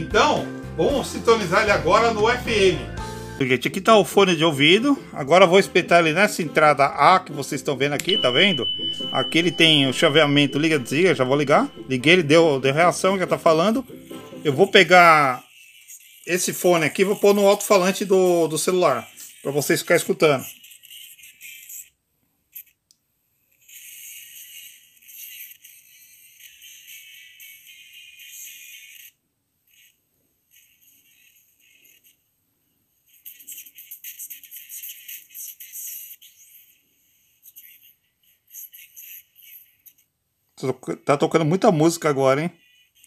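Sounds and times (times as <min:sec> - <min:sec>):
tinny radio music: 0:00.0 - 0:15.5, 0:16.2 - 0:20.6
tinny radio talk: 0:07.9 - 0:15.3.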